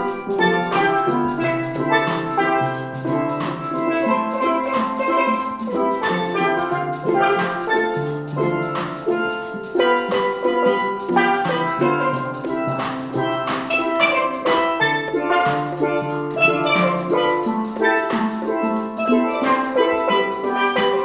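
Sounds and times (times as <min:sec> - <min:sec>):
drum kit beat: 0:00.0 - 0:21.0
steel pans ringing: 0:00.0 - 0:21.0.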